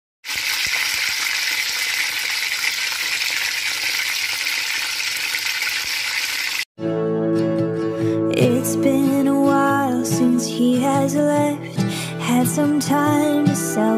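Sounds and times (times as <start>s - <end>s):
chicken frying in oil: 0.2s - 6.7s
music: 6.8s - 13.9s.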